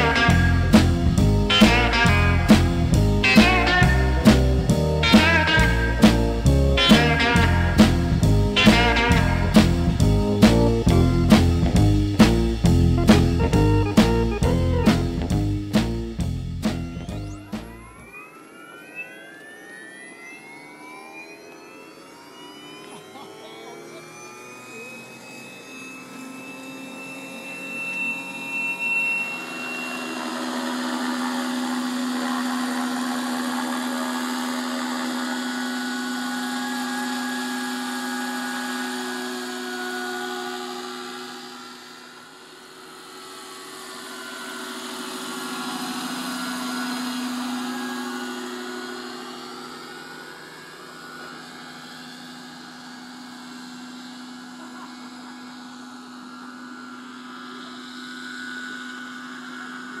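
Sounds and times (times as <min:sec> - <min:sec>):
model helicopter whine: 0:00.0 - 1:00.0.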